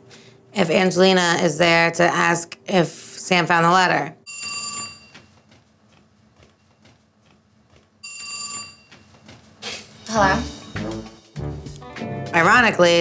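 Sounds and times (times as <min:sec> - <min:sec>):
telephone ringing: 0:04.3 - 0:05.4, 0:08.0 - 0:09.1.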